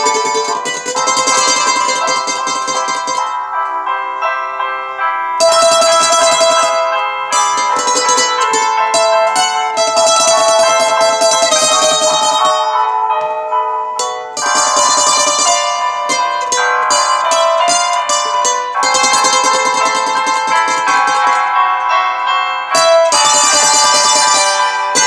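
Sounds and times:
acoustic stringed instrument playing: 0.0 - 4.4, 5.3 - 25.0.

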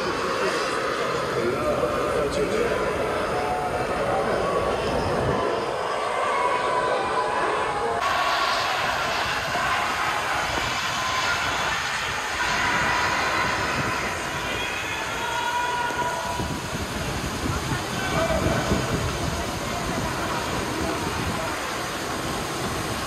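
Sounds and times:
large crowd din: 0.0 - 23.0
continuous low rumble: 7.6 - 23.0.

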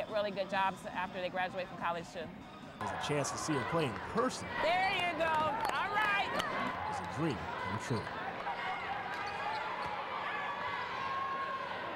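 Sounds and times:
sneaker squeaks: 9.0 - 10.0.

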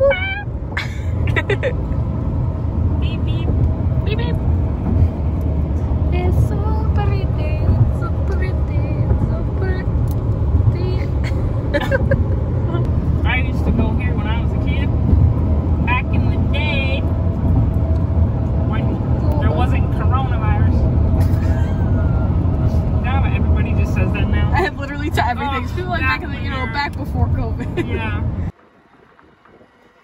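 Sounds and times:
road and wind noise in car: 0.0 - 30.0.

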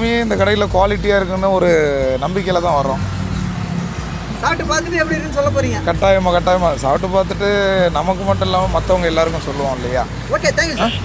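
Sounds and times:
man talking: 0.0 - 3.1, 5.3 - 11.0
vehicle engine humming: 0.0 - 11.0.

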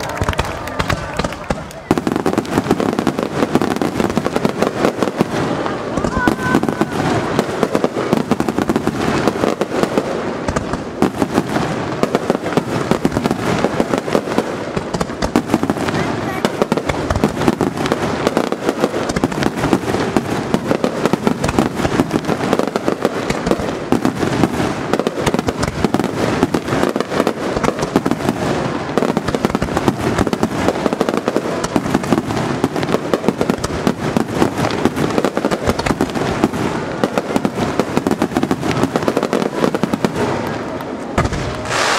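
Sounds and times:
fireworks booming and crackling: 0.0 - 41.9.

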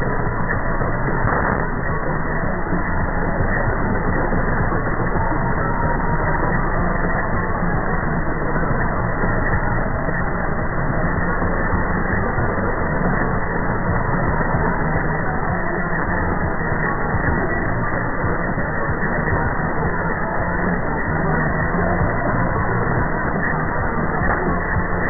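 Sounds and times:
music on am radio: 0.0 - 25.0
radio static and interference: 0.0 - 25.0.

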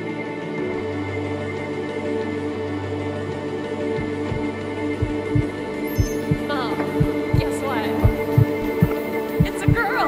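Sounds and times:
heartbeat sound effect: 4.0 - 10.0.

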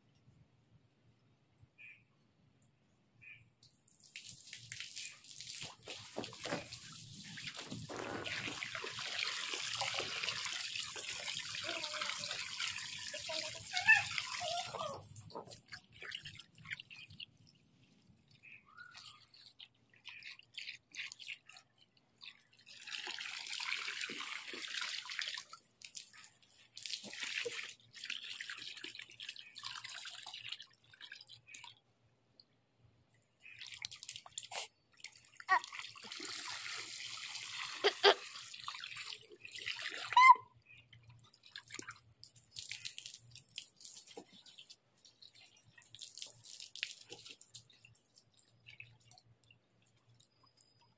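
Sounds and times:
water from hose splashing into pool: 3.6 - 32.4, 33.4 - 50.9.

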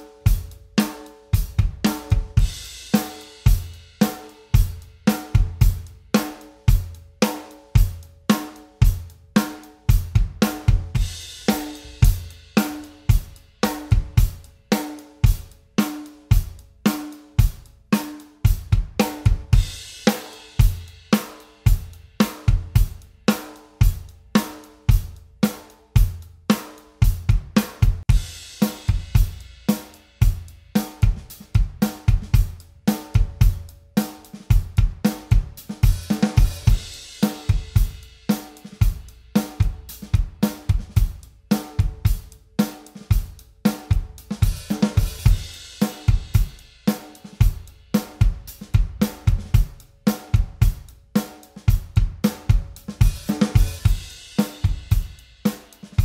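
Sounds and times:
snare drum backbeats: 26.5 - 56.0.

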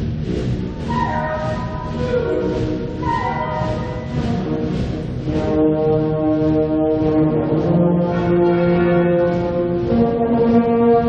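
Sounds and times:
wind band playing chords: 0.0 - 11.0.

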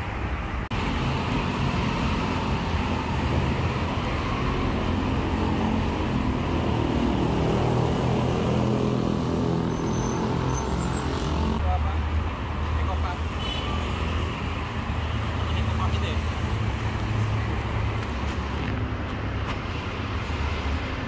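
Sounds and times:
cars and motorcycles passing: 0.0 - 21.0.

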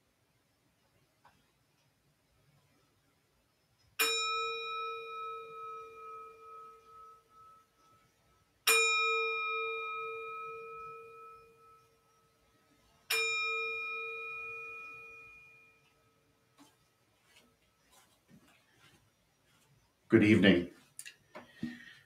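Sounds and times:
bell ringing: 13.1 - 15.8.

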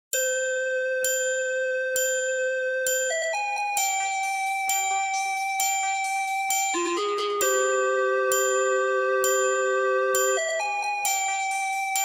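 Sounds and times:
bell-like chime: 0.1 - 12.0.

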